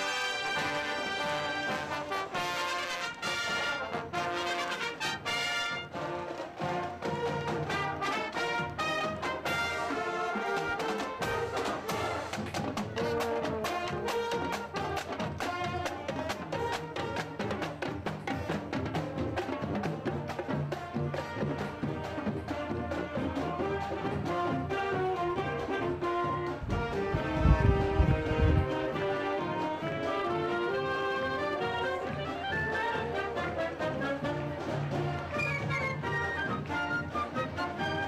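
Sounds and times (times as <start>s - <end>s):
brass marching band: 0.0s - 38.0s.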